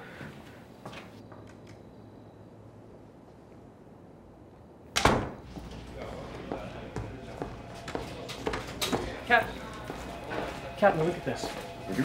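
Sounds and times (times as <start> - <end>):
low room hum: 0.0 - 12.0
door banging shut: 5.0 - 5.5.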